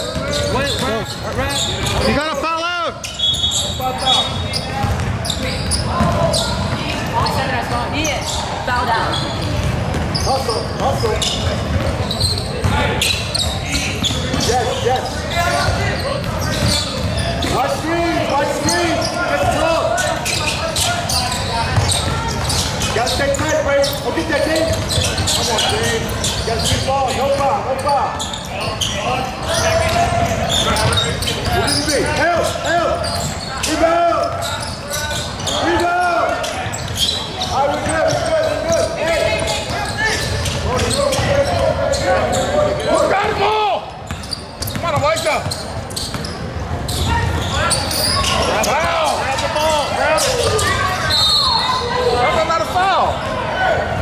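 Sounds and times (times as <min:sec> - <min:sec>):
basketball bouncing on hardwood court: 0:04.8 - 0:07.4, 0:09.4 - 0:10.2, 0:10.8 - 0:12.8.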